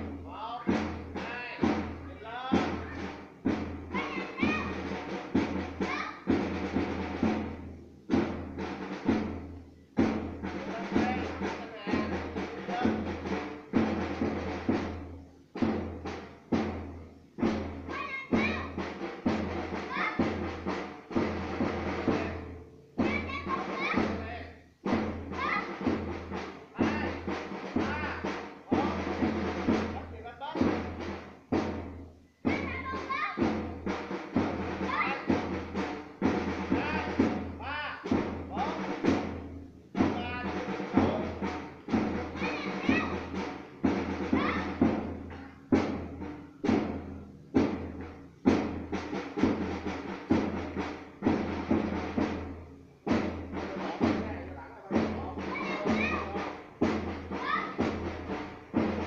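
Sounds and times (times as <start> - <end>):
voices: 0.0 - 7.1, 10.4 - 13.4, 17.9 - 20.5, 21.2 - 31.0, 32.4 - 39.2, 40.0 - 45.8, 53.5 - 58.5
drum beating marching rhythm: 0.0 - 59.0.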